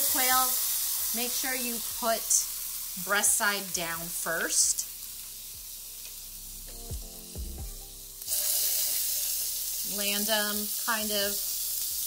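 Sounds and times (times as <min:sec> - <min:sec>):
meat sizzling in a skillet: 0:00.0 - 0:06.5, 0:07.9 - 0:12.0
loud sizzle: 0:00.0 - 0:12.0.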